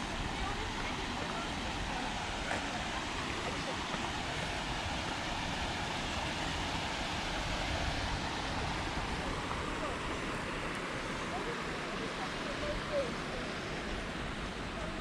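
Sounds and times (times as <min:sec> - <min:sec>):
river water rushing over weir: 0:00.0 - 0:15.0.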